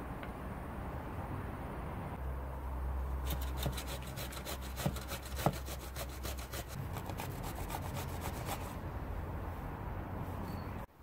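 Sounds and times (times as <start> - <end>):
grating on a metal grater: 3.3 - 8.8.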